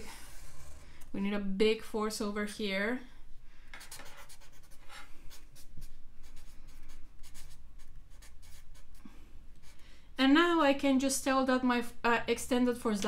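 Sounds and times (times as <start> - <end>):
marker scratching on paper: 3.8 - 9.0.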